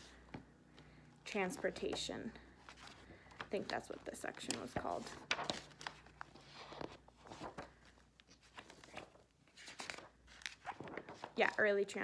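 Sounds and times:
pages rustling and clicking: 1.5 - 11.6.

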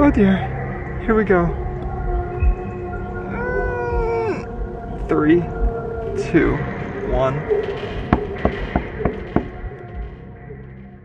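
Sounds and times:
low background music drone: 0.0 - 11.0
closed-mouth whimper: 3.3 - 4.5.

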